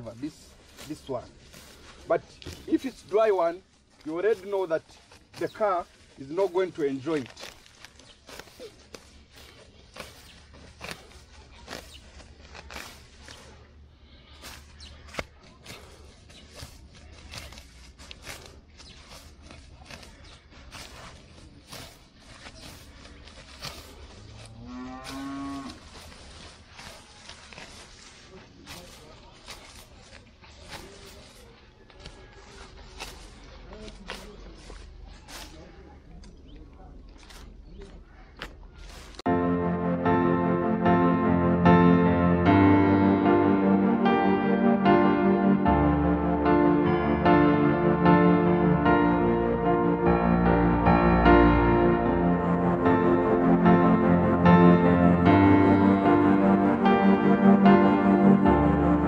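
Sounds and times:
sickle cutting grass: 0:00.0 - 0:36.3, 0:37.1 - 0:40.8
cow mooing: 0:24.6 - 0:25.8.

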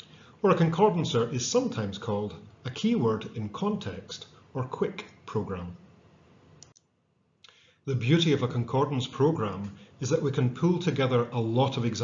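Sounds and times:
man speaking: 0:00.4 - 0:05.8, 0:07.9 - 0:12.0.

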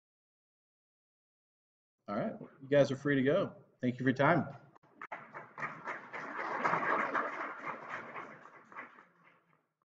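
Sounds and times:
dense clatter of audience noise: 0:04.9 - 0:09.6.

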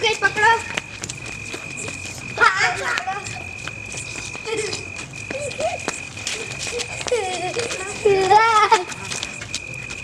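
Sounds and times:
children playing: 0:00.0 - 0:10.0
thin steady high tone: 0:00.0 - 0:10.0
child's high-pitched shout: 0:02.4 - 0:03.5, 0:07.0 - 0:08.9.

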